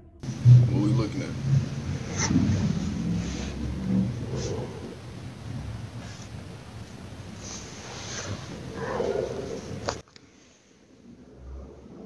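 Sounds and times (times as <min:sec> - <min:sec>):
low rumble: 0:00.0 - 0:10.0
bedding rustling: 0:00.2 - 0:10.0.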